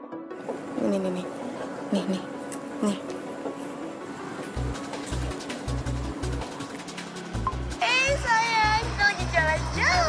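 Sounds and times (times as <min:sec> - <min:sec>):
low droning background music: 0:00.0 - 0:10.0.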